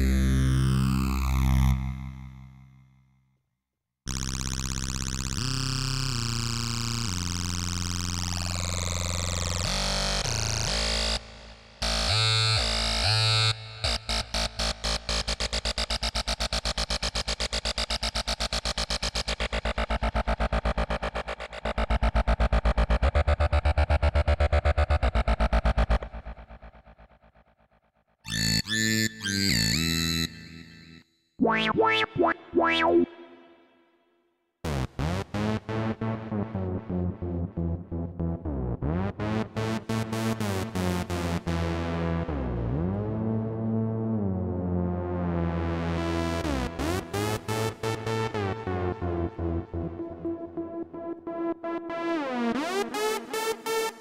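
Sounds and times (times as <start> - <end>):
fast repeating synthesizer notes: 31.4 - 33.5
synthesizer lead with deep bass: 31.4 - 33.6, 34.7 - 53.8.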